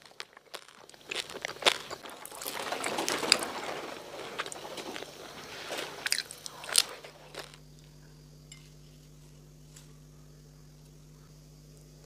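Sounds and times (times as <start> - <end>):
biting crunchy roasted meat: 0.0 - 5.1, 5.9 - 7.8
low hum: 0.0 - 12.0.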